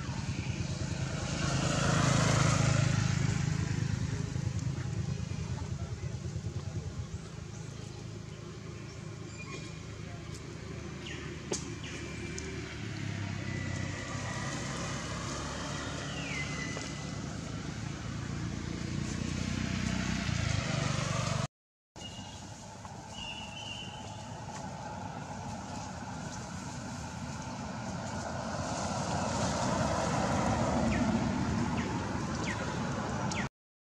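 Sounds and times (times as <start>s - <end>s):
outdoor rumble and hiss: 0.0s - 21.4s.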